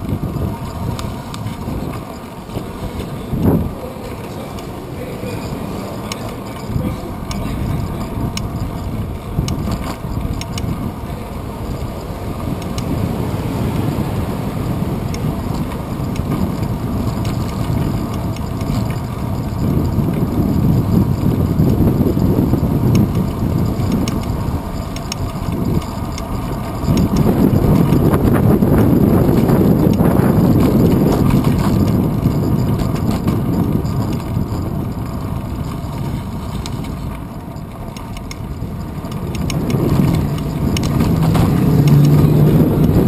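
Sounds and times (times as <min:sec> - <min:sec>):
road rumble: 0:00.0 - 0:43.0
wind buffeting: 0:00.0 - 0:43.0
faint rattling clicks: 0:05.9 - 0:10.8, 0:15.1 - 0:43.0.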